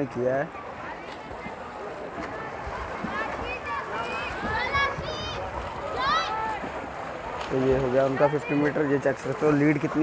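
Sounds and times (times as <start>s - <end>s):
spectators talking and calling out: 0.0s - 10.0s
swimmers splashing: 0.0s - 10.0s.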